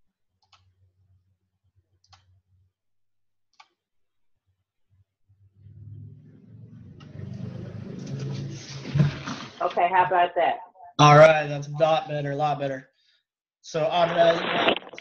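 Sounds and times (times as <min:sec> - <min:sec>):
computer mouse clicks: 0:03.5 - 0:03.8
faint low hum: 0:05.3 - 0:12.8.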